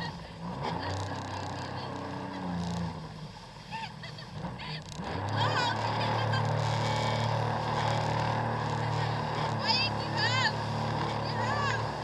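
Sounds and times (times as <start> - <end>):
jet ski engine idling: 0.0 - 12.0.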